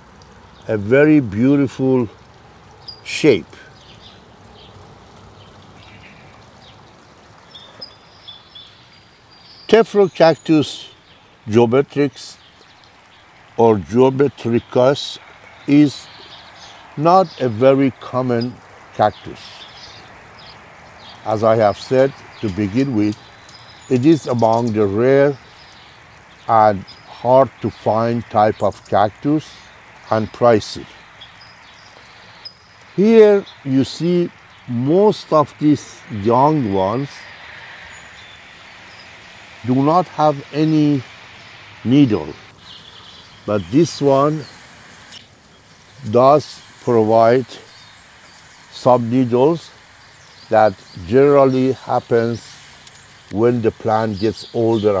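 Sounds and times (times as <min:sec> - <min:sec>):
faint outdoor background noise: 0:00.0 - 0:55.0
faint steady hiss: 0:00.0 - 0:55.0
small bird chirping: 0:02.7 - 0:11.3, 0:12.3 - 0:17.6, 0:18.3 - 0:55.0.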